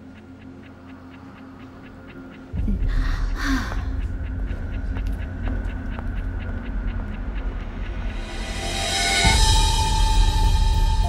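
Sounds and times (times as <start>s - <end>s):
faint regular ticking: 0.0s - 11.0s
low rumbling drone: 1.9s - 11.0s.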